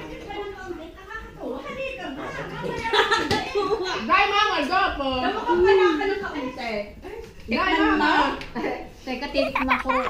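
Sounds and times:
indistinct voices talking: 9.4s - 10.0s.

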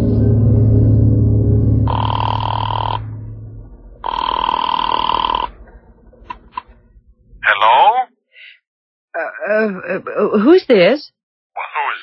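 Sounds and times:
telephone ringing: 1.9s - 3.1s, 4.0s - 5.6s.

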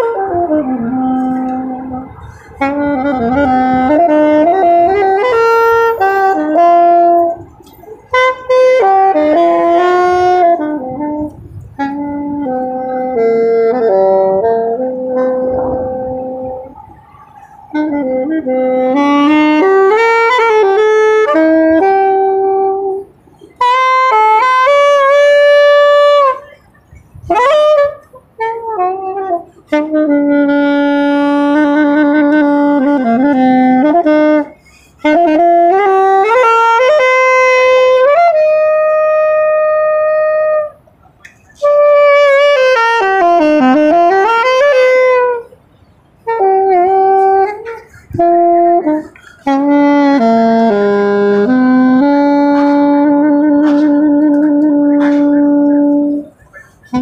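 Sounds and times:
solo saxophone melody: 0.0s - 57.0s.

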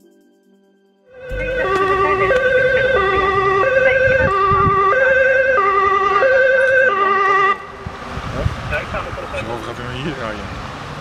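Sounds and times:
two-tone ambulance siren: 1.1s - 8.0s.

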